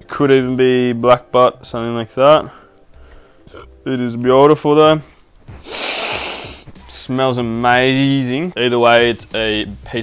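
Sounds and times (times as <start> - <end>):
person sniffing: 5.5 - 6.8.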